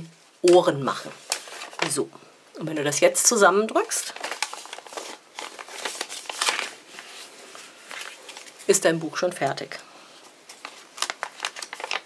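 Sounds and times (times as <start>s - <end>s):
paper crinkling and rustling: 0.4s - 2.0s, 3.8s - 9.0s, 10.2s - 12.0s.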